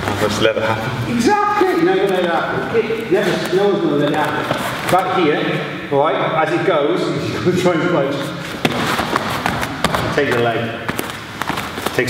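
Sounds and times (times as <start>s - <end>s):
feet landing on foam mats: 8.6s - 12.0s.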